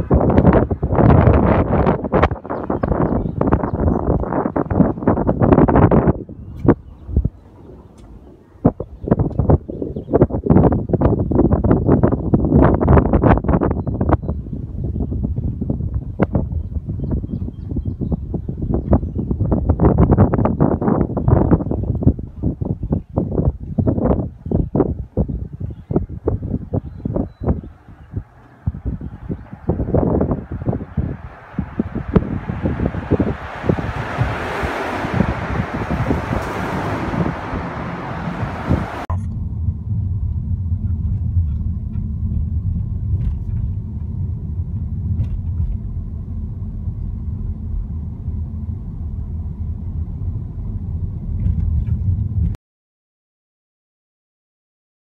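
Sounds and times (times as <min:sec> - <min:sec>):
vehicle rushing noise: 0:00.0 - 0:10.9, 0:27.4 - 0:52.6
car rumble on rough road: 0:00.0 - 0:24.9, 0:25.6 - 0:52.6.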